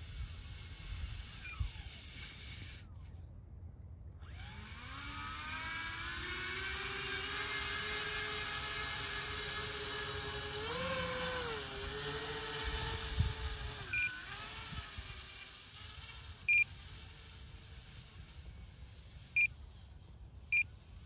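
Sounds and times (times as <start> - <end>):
electric motors and propellers whining: 0.0 - 3.3, 4.1 - 21.0.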